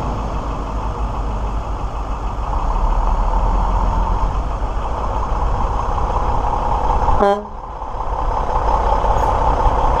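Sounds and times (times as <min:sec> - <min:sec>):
truck diesel engine running: 0:00.0 - 0:10.0.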